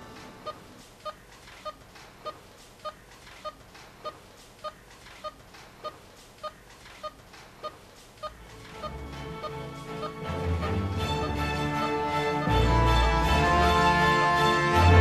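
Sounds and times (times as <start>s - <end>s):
patient monitor beeping: 0.0s - 10.2s.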